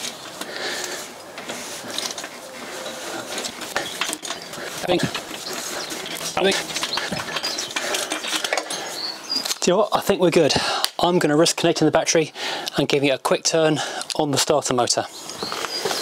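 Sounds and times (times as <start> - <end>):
hand tools clinking on metal: 1.9 - 9.7.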